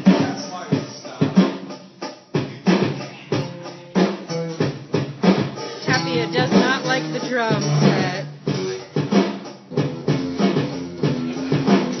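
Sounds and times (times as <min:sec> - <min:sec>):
pitched music: 0:00.0 - 0:12.0
electronic bass drum kicks: 0:04.2 - 0:12.0.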